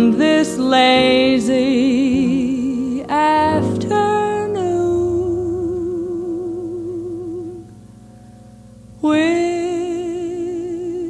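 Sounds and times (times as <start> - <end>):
woman singing jazz ballad: 0.0 - 7.8, 9.0 - 11.0
piano: 0.0 - 11.0
double bass: 4.6 - 7.9.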